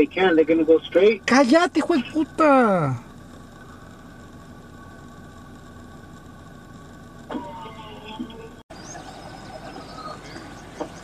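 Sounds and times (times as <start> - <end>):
faint steady tones: 0.0 - 11.0
low hum: 0.0 - 11.0.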